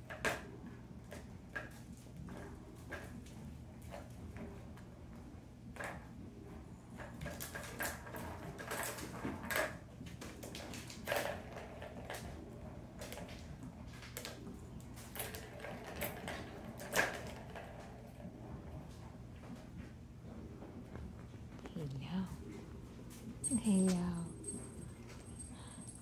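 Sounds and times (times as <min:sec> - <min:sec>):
kittens' paws knocking and scrabbling: 0:07.0 - 0:26.0.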